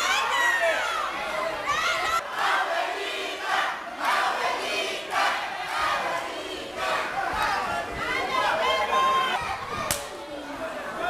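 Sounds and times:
crowd chanting: 0.0 - 9.5.

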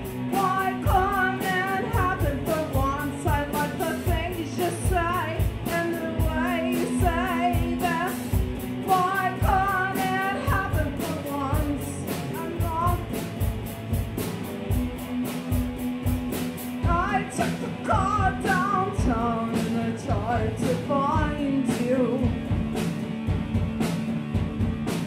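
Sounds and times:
drums hitting: 0.0 - 25.0
electric guitar: 0.0 - 25.0
person singing: 0.2 - 13.2, 16.8 - 22.5.

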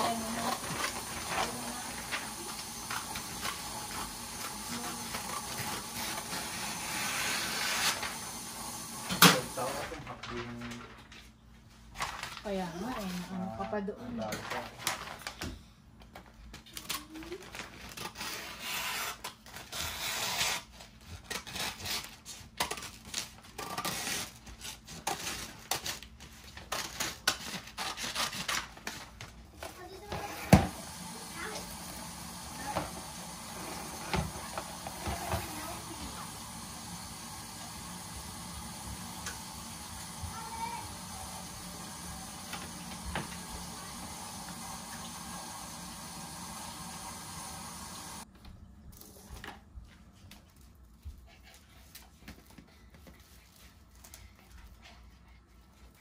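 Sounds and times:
paper crinkling and rustling: 9.6 - 30.1
scissors cutting paper: 16.6 - 29.3.

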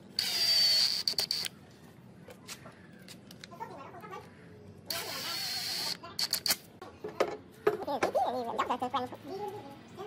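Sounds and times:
cordless drill whining: 0.2 - 1.5, 4.9 - 6.0.

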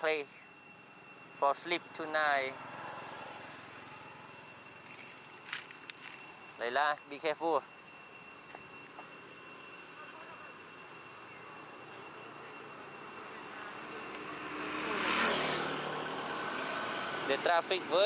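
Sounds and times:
pickup truck driving past: 14.3 - 17.5.

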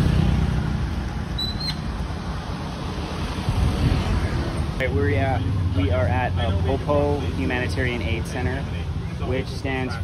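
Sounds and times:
traffic rumble: 0.0 - 10.0
brief high squeak: 1.4 - 1.9.

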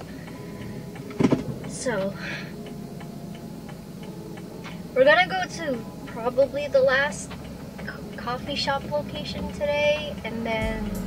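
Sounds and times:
car cabin low hum: 0.0 - 11.0
car indicator ticking: 0.0 - 11.0.

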